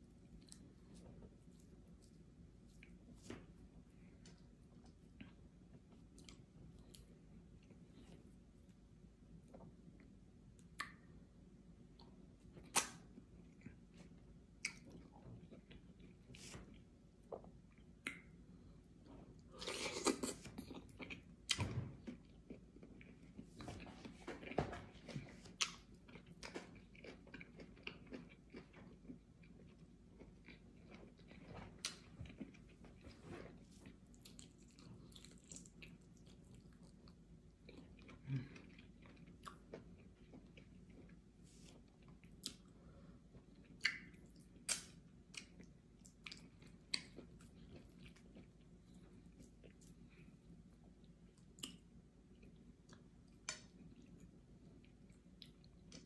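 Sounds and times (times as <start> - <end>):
person chewing and eating: 11.9 - 56.0.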